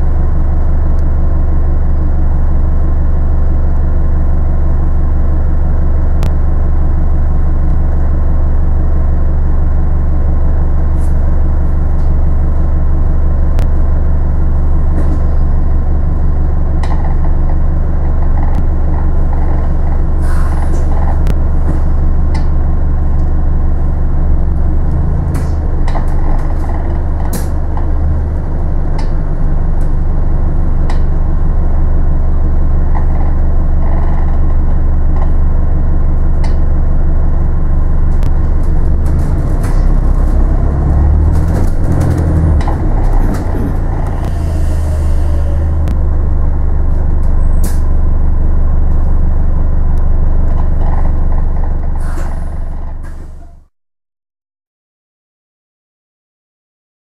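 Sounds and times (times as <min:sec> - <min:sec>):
bus engine drone: 0:00.0 - 0:53.7.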